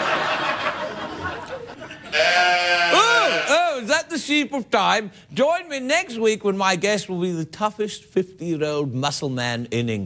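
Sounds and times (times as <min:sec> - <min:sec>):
man making comic vocal noises: 0:02.9 - 0:04.0.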